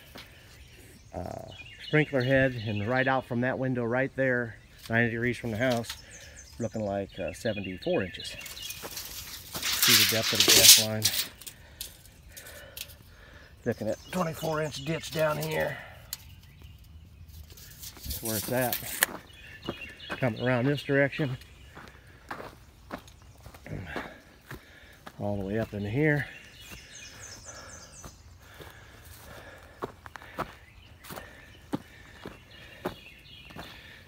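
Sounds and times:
footsteps on dirt and grass: 0:00.0 - 0:00.7, 0:07.8 - 0:12.7, 0:13.8 - 0:34.0.

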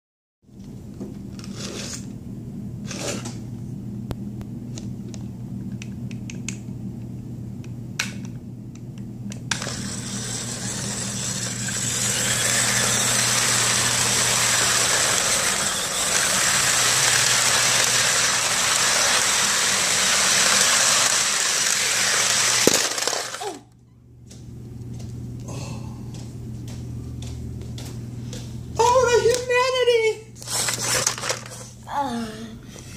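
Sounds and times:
low steady hum: 0:00.5 - 0:32.9
toy train motor whirring: 0:09.5 - 0:23.6, 0:30.4 - 0:31.7.

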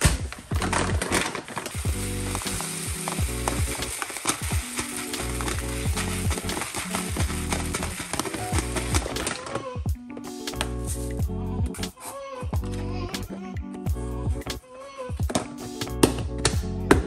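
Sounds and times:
rice pouring into plastic container: 0:00.0 - 0:09.6
background music with a beat: 0:01.8 - 0:17.0.

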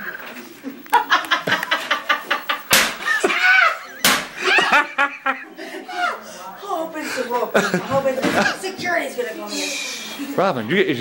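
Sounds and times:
men laughing: 0:00.0 - 0:06.3, 0:07.3 - 0:08.6
sharp smacks: 0:02.7 - 0:03.1, 0:04.0 - 0:04.4.

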